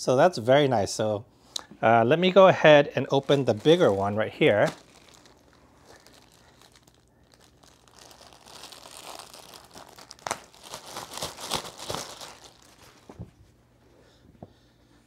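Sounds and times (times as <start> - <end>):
plastic packaging crinkling: 3.0 - 13.3.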